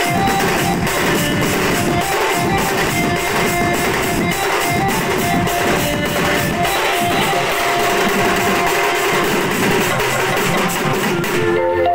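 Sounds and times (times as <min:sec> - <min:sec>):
drums and cymbals: 0:00.0 - 0:11.6
melody line: 0:00.0 - 0:11.9.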